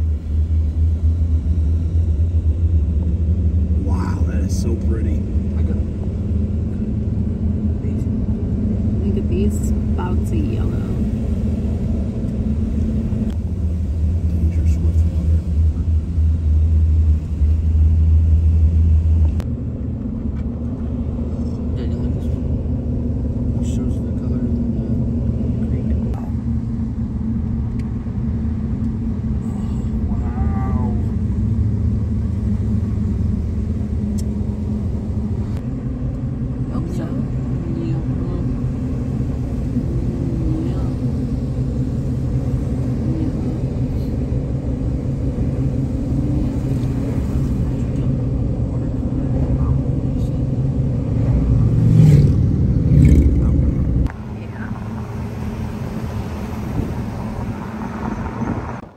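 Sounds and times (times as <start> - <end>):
car road and engine rumble: 0.0 - 58.9.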